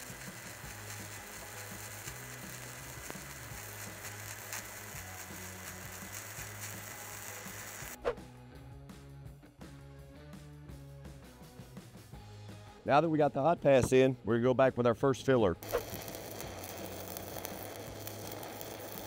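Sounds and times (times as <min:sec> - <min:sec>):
welding arc crackling hiss: 0:00.0 - 0:08.0, 0:15.6 - 0:19.0
background music with steady beat: 0:00.0 - 0:19.0.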